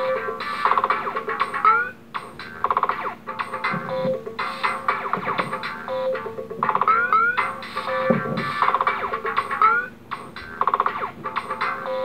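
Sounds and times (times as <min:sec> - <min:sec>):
electronic music loops: 0:00.0 - 0:12.0.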